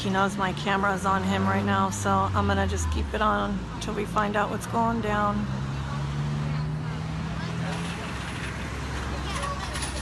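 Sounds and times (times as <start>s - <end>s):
faint voices: 0.0s - 10.0s
road noise: 0.0s - 10.0s
vehicle engine humming: 0.0s - 10.0s.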